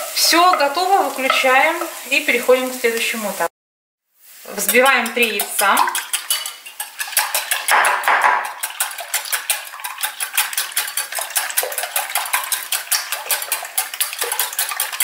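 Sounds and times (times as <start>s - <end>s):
whisk clinking in glass bowl: 4.8s - 15.0s.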